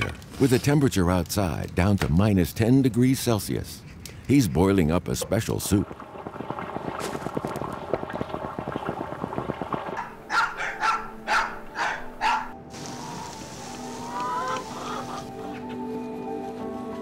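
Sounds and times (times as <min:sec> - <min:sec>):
dog barking: 0:10.0 - 0:12.6
soft music: 0:10.0 - 0:17.0.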